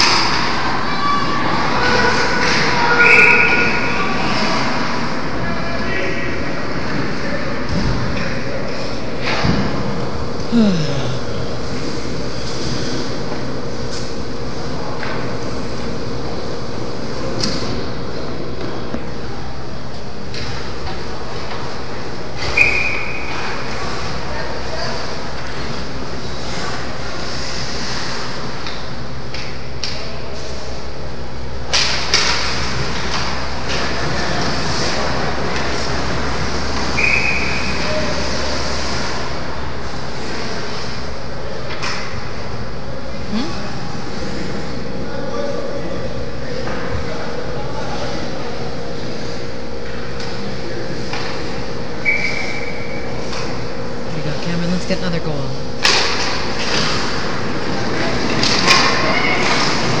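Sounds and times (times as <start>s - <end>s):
arena hum: 6.3s - 24.1s, 25.4s - 60.0s.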